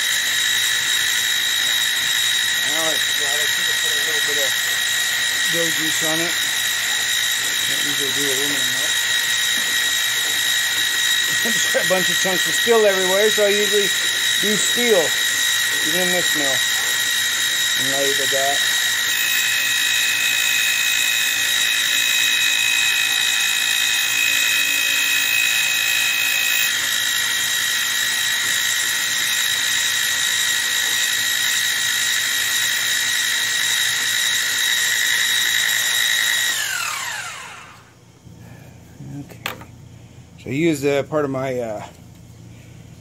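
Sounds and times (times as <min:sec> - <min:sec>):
milling machine spindle whine: 0:00.0 - 0:38.0.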